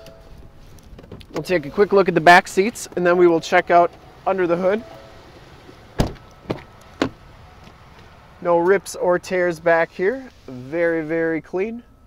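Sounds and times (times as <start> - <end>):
car door thump: 5.7 - 7.8
car door latch clicks: 6.0 - 7.8.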